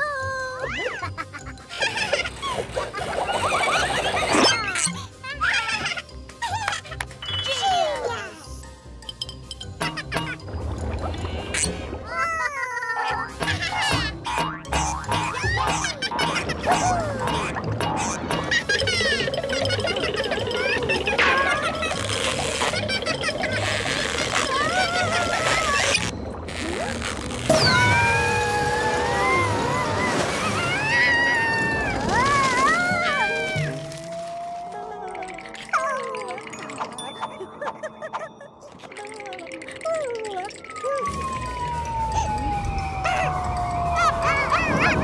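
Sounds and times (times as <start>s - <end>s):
background music: 0.0s - 45.0s
cartoon character wailing: 40.1s - 45.0s.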